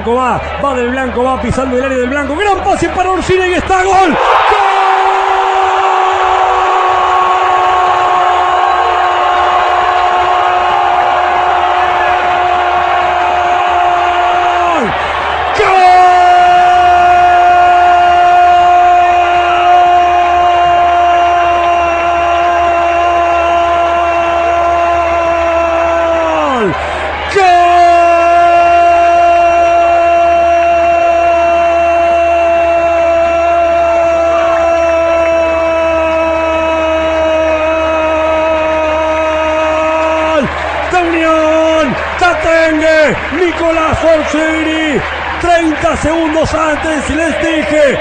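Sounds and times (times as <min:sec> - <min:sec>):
commentator shouting goal cry: 0:12.1 - 0:48.0.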